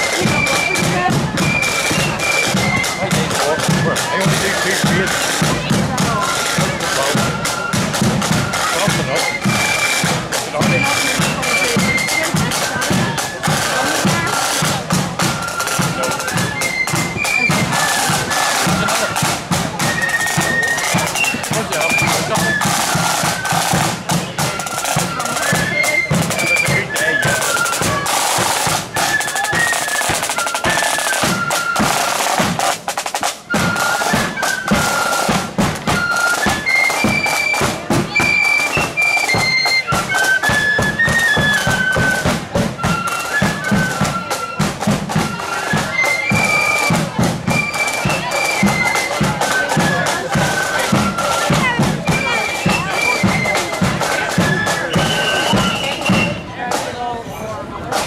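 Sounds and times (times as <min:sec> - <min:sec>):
snare drums rattling: 0:00.0 - 0:56.4
marching flute band playing: 0:00.0 - 0:58.0.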